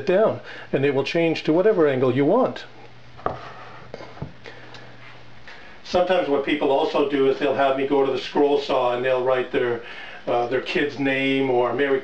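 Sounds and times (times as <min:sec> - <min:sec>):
man talking: 0:00.0 - 0:02.8, 0:05.8 - 0:12.0
low steady hum: 0:00.0 - 0:12.0.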